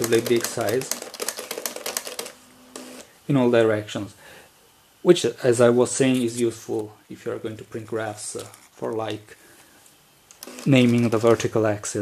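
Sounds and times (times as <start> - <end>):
plotter pen ticking: 0.0 - 2.3
faint steady hum: 0.0 - 12.0.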